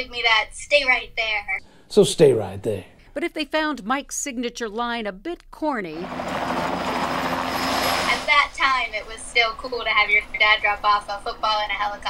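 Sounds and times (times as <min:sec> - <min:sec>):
helicopter engine and rotor: 0:06.0 - 0:08.3.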